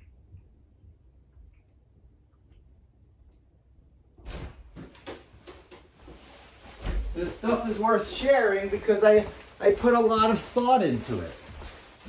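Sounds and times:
light knocks and clicks indoors: 4.3 - 7.1.

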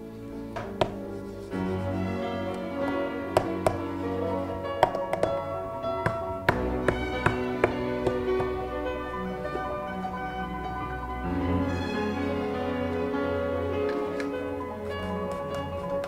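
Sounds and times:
string music: 0.0 - 16.0.

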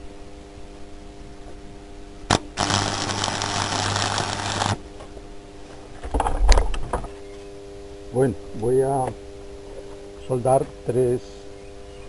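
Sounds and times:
welding arc click: 2.3 - 4.8
welder crackling and buzzing: 2.3 - 5.1.

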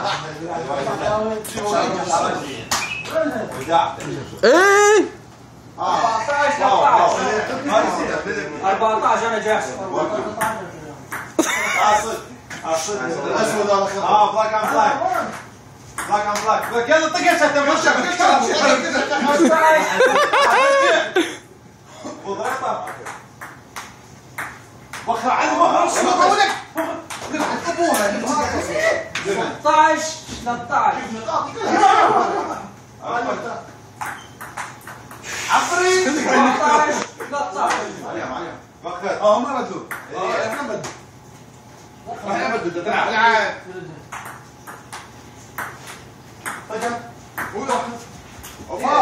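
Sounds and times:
men's voices: 5.8 - 23.2
ping-pong ball clicking: 22.5 - 25.1, 34.0 - 35.2, 44.1 - 47.6.

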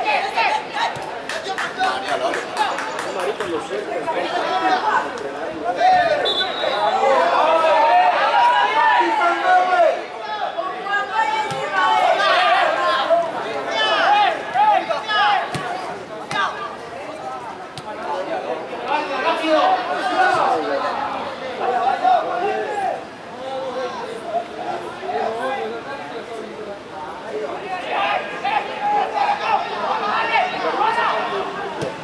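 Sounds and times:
people chattering and calling out: 0.0 - 32.0.

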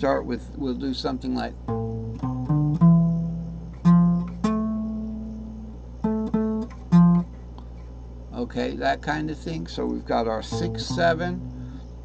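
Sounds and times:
steady low hum: 0.0 - 12.0
plucked guitar notes: 1.7 - 7.4, 10.4 - 11.8.

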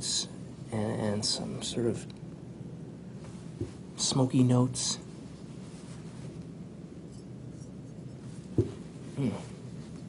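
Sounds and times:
room hum: 0.0 - 10.0
glass set down on cloth table: 8.5 - 8.9.

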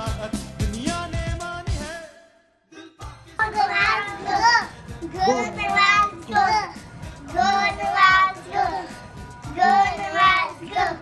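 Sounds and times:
children singing a chant: 3.4 - 11.0.

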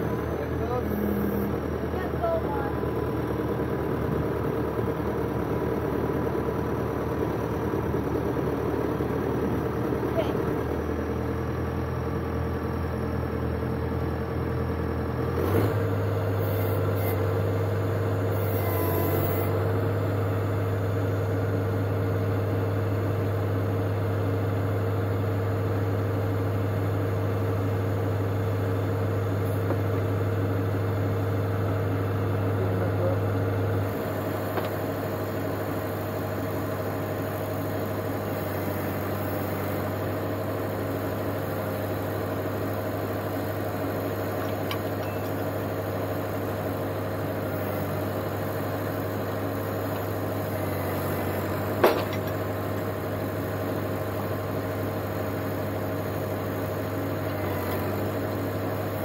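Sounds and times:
tractor diesel engine idling: 0.0 - 59.0.

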